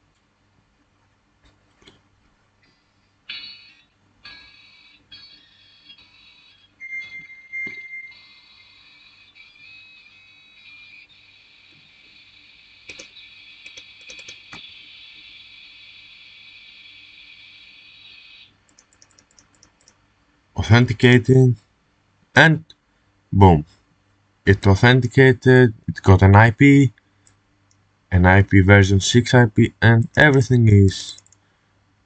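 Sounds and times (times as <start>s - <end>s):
modem line training hiss: 7.1s - 20.0s
clicks: 12.9s - 14.7s, 31.1s - 31.4s.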